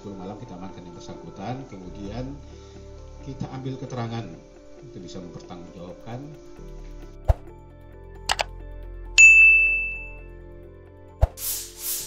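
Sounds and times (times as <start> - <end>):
bright high bell chime: 9.2 - 10.3.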